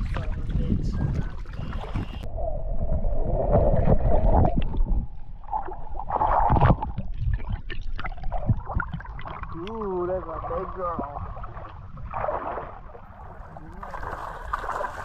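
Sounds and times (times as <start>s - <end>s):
water sloshing and churning: 0.0s - 2.3s, 3.3s - 15.0s.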